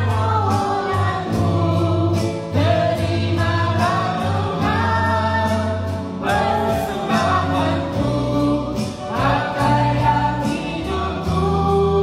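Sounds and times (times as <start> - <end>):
backing track with bass and drums: 0.0 - 12.0
woman singing into microphone: 0.0 - 12.0.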